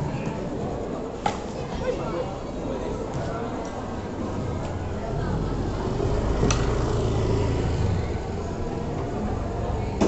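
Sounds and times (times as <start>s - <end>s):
urban background rumble and hiss: 0.0s - 10.0s.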